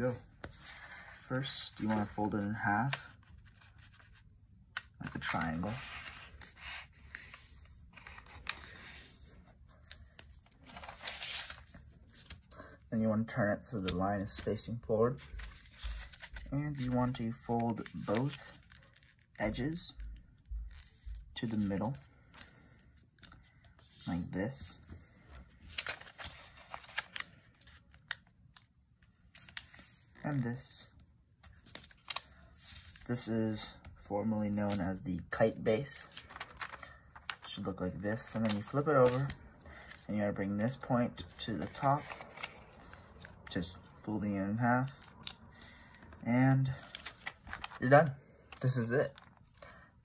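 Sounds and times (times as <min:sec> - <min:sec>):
paper rustling and scraping: 0:00.1 - 0:04.2, 0:05.0 - 0:12.5, 0:23.7 - 0:27.9, 0:36.0 - 0:40.0, 0:40.6 - 0:43.4, 0:44.9 - 0:49.6.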